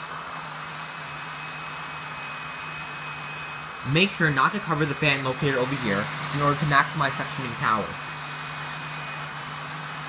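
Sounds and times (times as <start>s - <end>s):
mini vacuum cleaner running: 0.0s - 10.0s.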